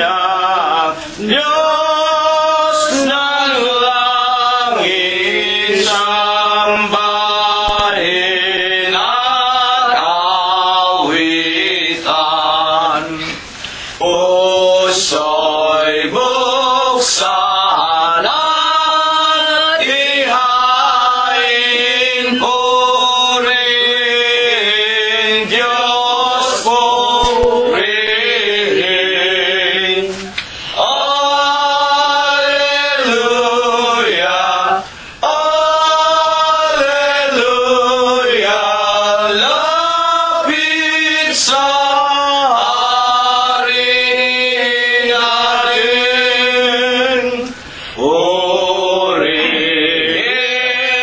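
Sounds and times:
voices singing a chant-like hymn: 0.0s - 51.0s.

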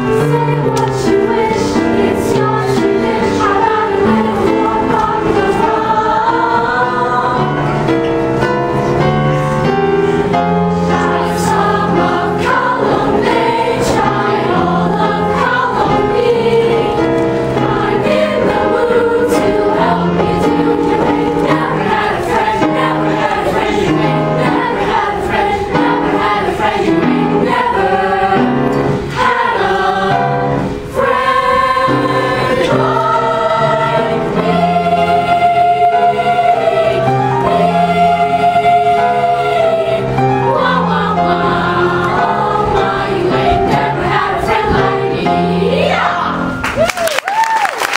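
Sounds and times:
children's choir singing: 0.0s - 46.6s.

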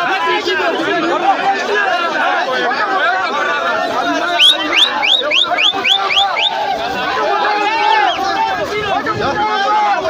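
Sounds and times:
crowd talking and calling out: 0.0s - 10.0s.

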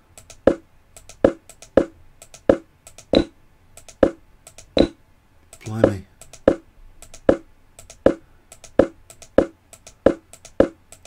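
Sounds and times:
computer mouse clicks: 0.1s - 11.0s.

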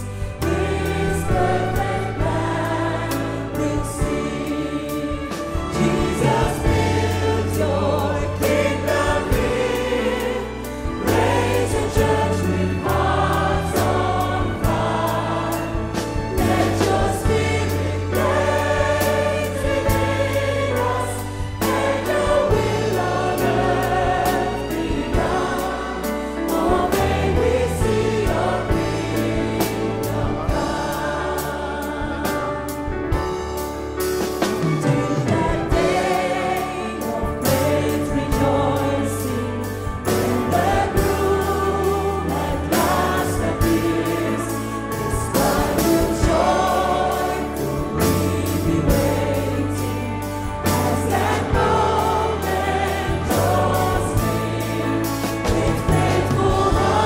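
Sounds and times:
bass guitar: 0.0s - 57.0s
choir singing: 0.0s - 57.0s.

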